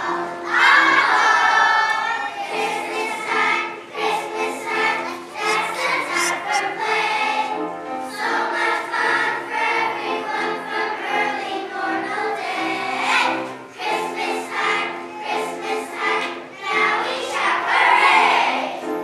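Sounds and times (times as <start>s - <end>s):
children's choir singing: 0.0s - 19.0s.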